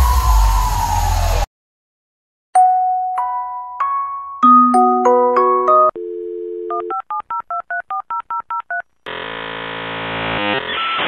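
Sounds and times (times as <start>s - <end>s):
hiss: 0.0s - 1.5s
touch-tone dialing beeps: 5.8s - 8.8s.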